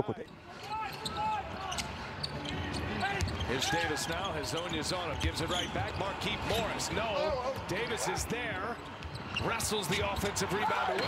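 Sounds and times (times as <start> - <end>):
sneaker squeaks: 0.2 - 6.6, 8.5 - 10.4.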